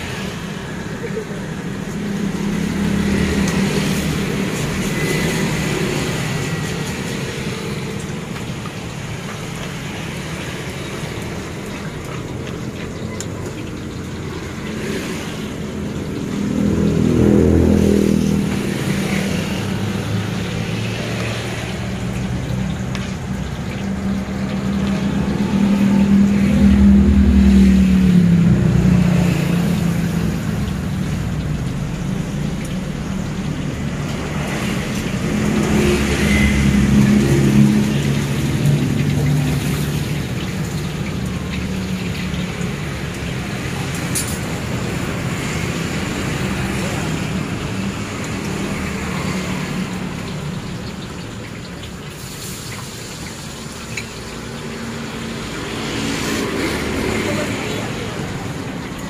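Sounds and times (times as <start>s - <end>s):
motor vehicles passing: 0.0s - 59.0s.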